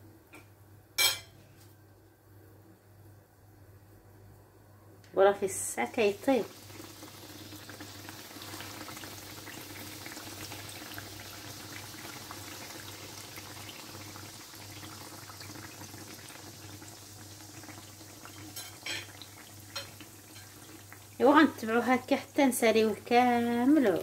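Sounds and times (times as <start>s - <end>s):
doughnuts sizzling in hot oil: 5.6s - 24.0s.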